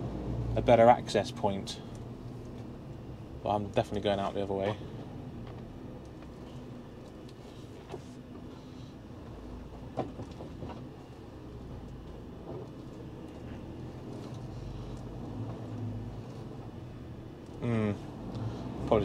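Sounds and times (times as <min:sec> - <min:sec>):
truck engine rumble: 0:00.0 - 0:19.0.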